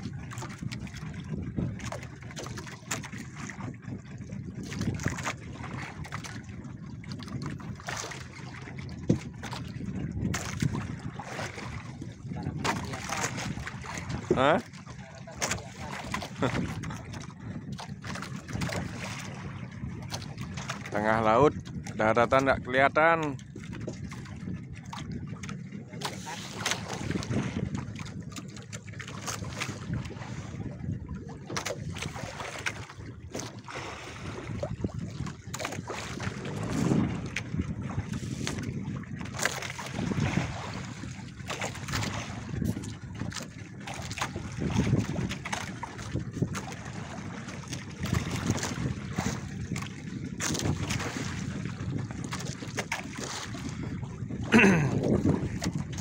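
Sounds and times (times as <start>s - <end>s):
boat engine humming: 0.0s - 56.0s
sea noise: 0.0s - 56.0s
water against hull: 0.0s - 56.0s
wind on microphone: 0.0s - 56.0s.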